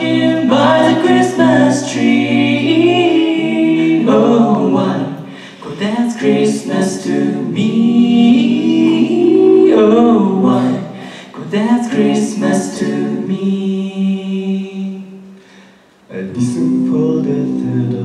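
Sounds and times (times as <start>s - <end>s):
a cappella group singing in harmony: 0.0s - 18.0s.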